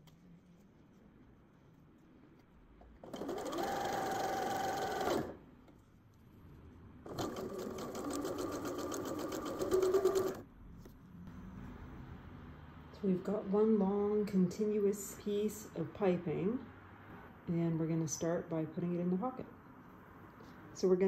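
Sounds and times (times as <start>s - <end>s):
sewing machine stitching: 3.0s - 5.4s, 7.1s - 10.4s.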